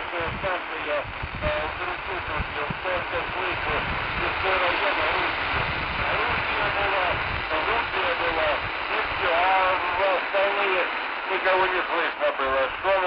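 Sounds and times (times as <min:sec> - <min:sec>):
radio static hiss: 0:00.0 - 0:13.0
voice over shortwave radio: 0:00.0 - 0:13.0.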